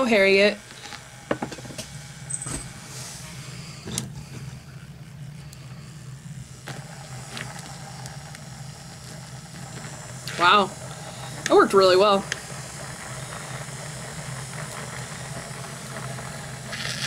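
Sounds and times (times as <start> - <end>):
small electric motor humming: 0.0 - 17.0.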